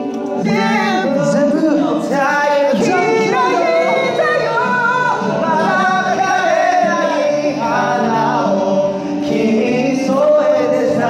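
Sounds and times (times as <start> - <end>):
young men singing into microphones: 0.0 - 11.0.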